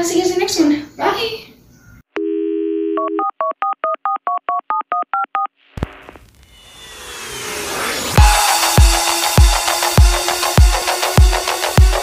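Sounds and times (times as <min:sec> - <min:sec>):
telephone dial tone: 0:02.2 - 0:05.5
touch-tone dialing beeps: 0:03.0 - 0:05.5
rising whoosh: 0:05.8 - 0:11.0
electronic music: 0:05.8 - 0:12.0.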